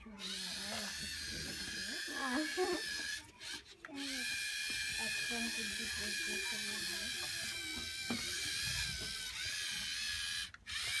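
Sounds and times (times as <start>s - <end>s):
electric motors and gears whirring: 0.0s - 11.0s.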